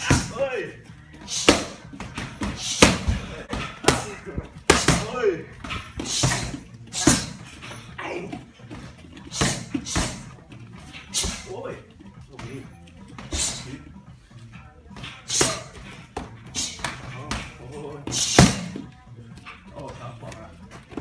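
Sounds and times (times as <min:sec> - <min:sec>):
punches smacking pads: 0:01.3 - 0:07.4, 0:15.3 - 0:18.8.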